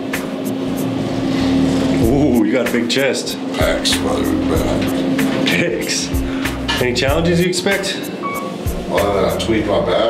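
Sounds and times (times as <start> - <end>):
elevator mechanical hum: 0.0 - 10.0.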